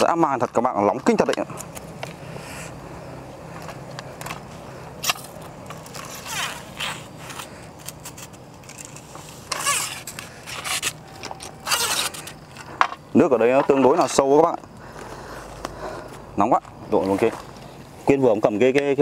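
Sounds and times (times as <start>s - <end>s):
steady low hum: 0.0s - 19.0s
fishing pole sections scraping: 5.0s - 12.9s.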